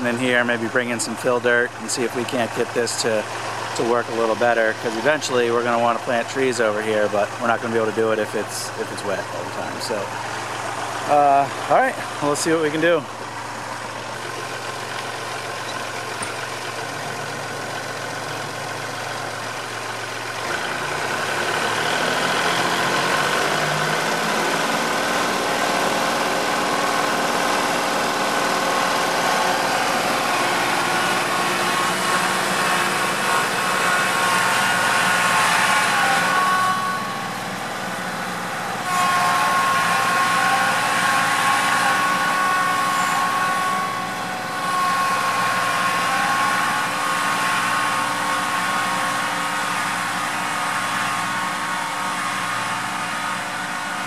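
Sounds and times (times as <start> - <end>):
tractor diesel engine working: 0.0 - 54.0.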